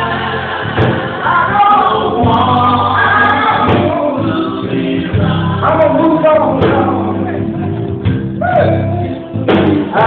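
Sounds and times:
bass line: 0.0 - 10.0
gospel group singing: 0.0 - 10.0.

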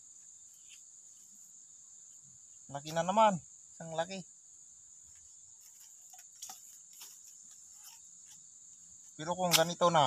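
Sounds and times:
insects chirring: 0.0 - 10.0.

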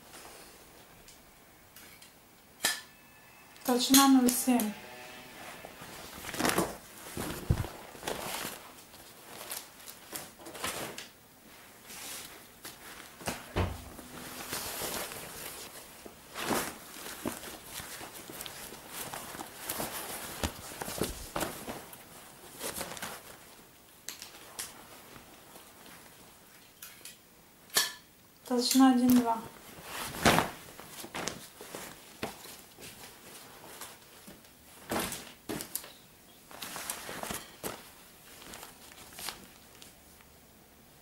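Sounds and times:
leather hides rustling and flapping: 5.8 - 11.0, 12.0 - 23.6, 29.2 - 35.9, 36.5 - 39.9.

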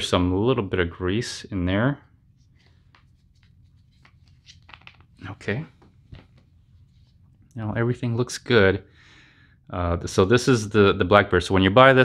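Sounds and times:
faint plastic knocks and rustles: 2.6 - 7.3.

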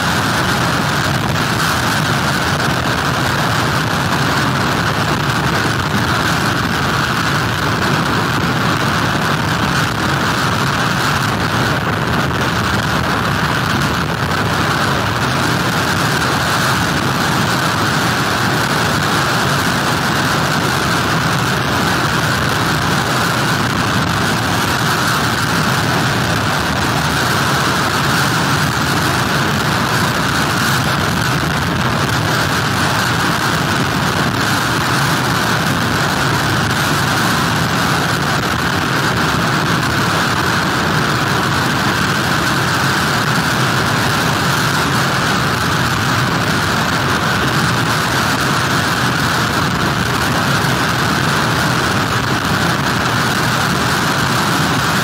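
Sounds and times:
heavy surf: 0.0 - 55.0
hurricane wind: 0.0 - 55.0
rain: 0.0 - 55.0.

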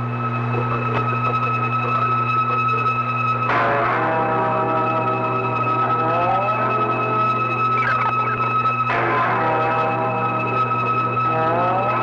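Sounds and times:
low radio hum: 0.0 - 3.6, 5.5 - 9.2.

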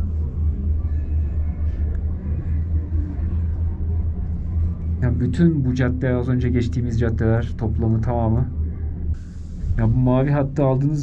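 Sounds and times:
gondola cabin rumble: 0.0 - 11.0.

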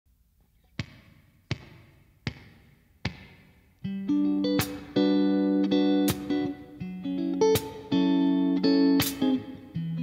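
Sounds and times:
guitar chord: 3.9 - 10.0.

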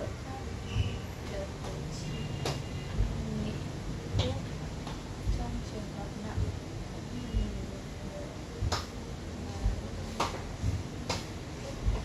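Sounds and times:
dull low thumps: 0.6 - 12.0.

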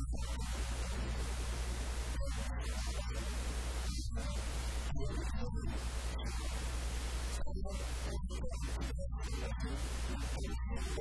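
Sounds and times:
constant hiss: 0.0 - 11.0
low electrical hum: 0.0 - 11.0.

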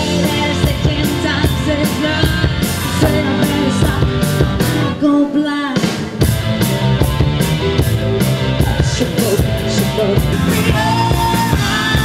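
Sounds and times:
woman singing: 0.0 - 4.3, 4.9 - 6.1, 8.7 - 12.0
steady drum beat: 0.0 - 5.0, 5.8 - 12.0
live band playing: 0.0 - 12.0.

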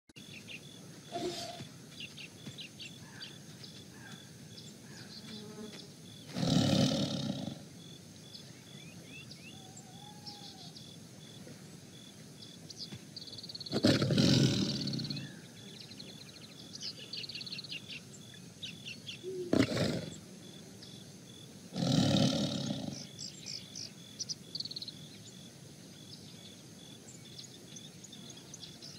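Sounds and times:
birds chirping: 0.2 - 28.9
tiger roaring and growling: 6.3 - 7.6, 13.7 - 15.4, 19.5 - 20.2, 21.7 - 23.1.

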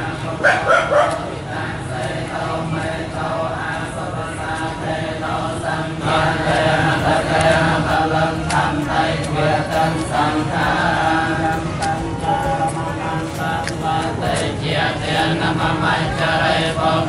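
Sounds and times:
group chanting in unison: 0.0 - 17.0.

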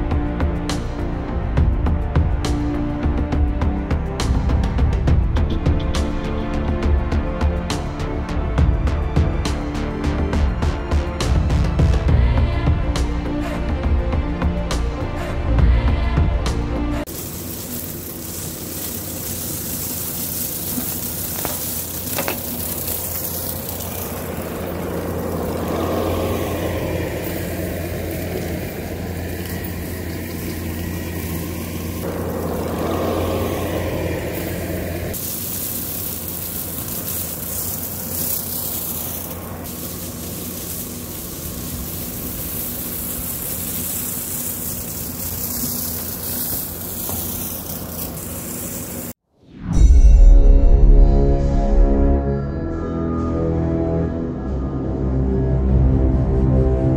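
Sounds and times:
brush cutter mowing weeds: 17.1 - 49.2
diesel engine running under load: 17.2 - 49.1.

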